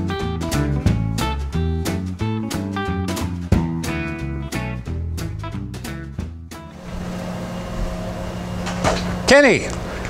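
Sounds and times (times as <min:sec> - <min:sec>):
low mechanical hum: 0:06.7 - 0:10.0.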